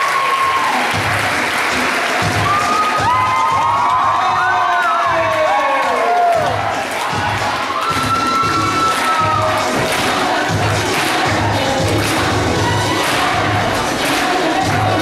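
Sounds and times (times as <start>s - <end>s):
crowd cheering and shouting: 0.0s - 11.5s, 12.3s - 15.0s
music with steady beat: 0.9s - 5.4s, 6.4s - 15.0s.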